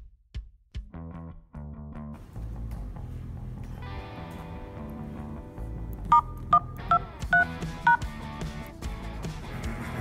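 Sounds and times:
background music: 0.8 - 10.0
keypad dialing tones: 6.1 - 8.1.

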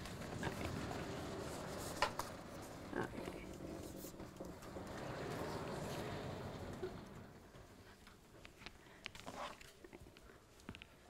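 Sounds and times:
sliding panel rumbling on track: 0.0 - 8.5
faint clicks and rustles: 0.0 - 11.0.

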